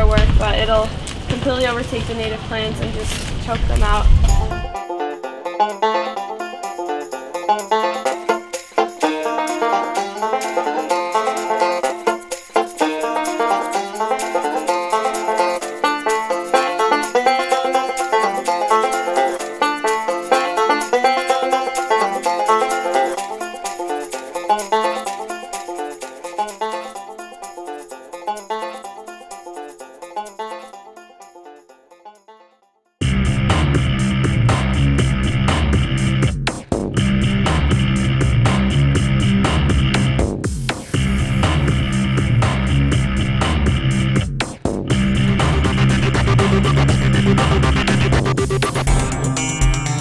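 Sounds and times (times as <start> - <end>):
bluegrass plucked-string music: 4.1 - 32.5, 44.9 - 50.0.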